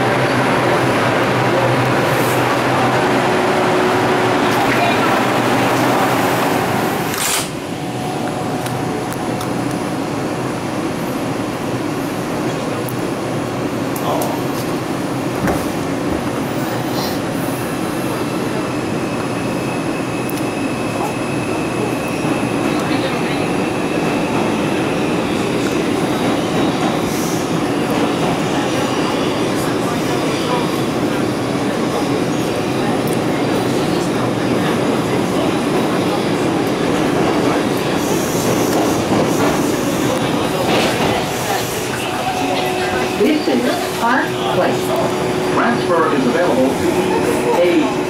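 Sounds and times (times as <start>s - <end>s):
subway car wheels rumbling: 0.0s - 48.0s.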